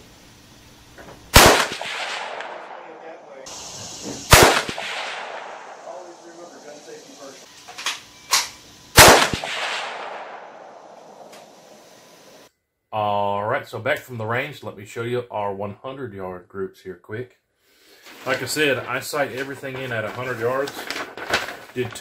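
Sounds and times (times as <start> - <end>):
rifle shots with echo: 1.3 - 6.5, 9.0 - 11.6.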